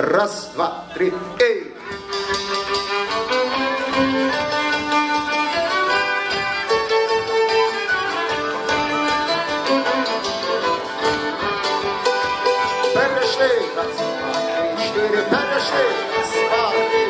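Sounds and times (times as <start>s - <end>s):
folk dance tune with fiddles: 0.6s - 17.0s
hammered dulcimer: 1.8s - 17.0s.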